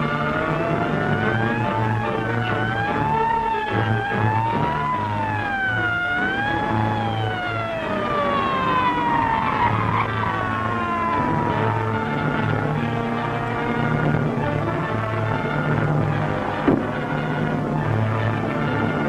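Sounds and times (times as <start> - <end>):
old film soundtrack music: 0.0 - 19.0
sirens wailing: 0.0 - 19.0.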